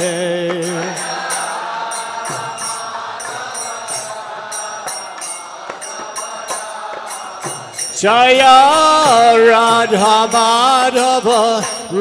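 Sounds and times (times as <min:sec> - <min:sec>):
hand cymbals struck rhythmically: 0:00.0 - 0:12.0
group of voices chanting: 0:00.6 - 0:09.2.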